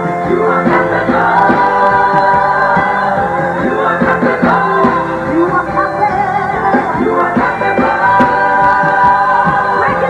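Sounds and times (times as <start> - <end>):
backing vocalists singing: 0.0 - 10.0
live band playing: 0.0 - 10.0.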